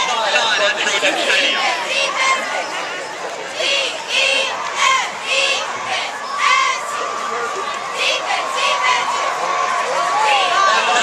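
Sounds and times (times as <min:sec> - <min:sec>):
crowd cheering and yelling: 0:00.0 - 0:11.0.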